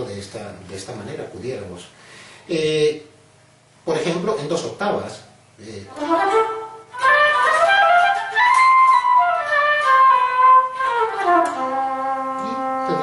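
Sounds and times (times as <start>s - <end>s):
electric guitar playing a scale: 5.9s - 13.0s.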